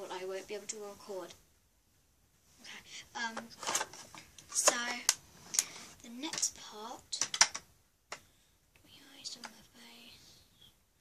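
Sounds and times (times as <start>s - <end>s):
girl whispering faintly: 8.8s - 10.8s.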